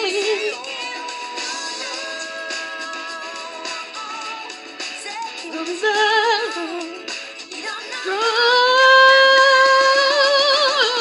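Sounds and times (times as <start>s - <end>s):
high singing voice with music: 0.0s - 11.0s.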